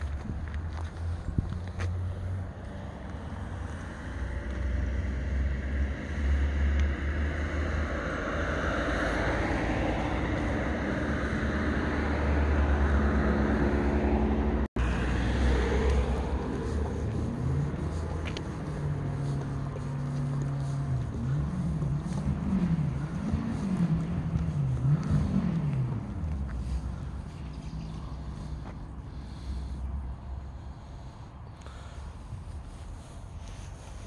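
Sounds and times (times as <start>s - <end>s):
car engine rumbling: 0.0s - 34.0s.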